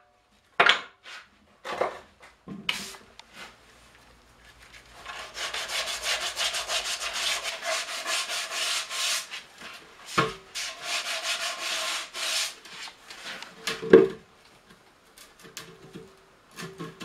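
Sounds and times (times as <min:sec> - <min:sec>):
glove rubbing wooden barrel: 0:05.0 - 0:13.0.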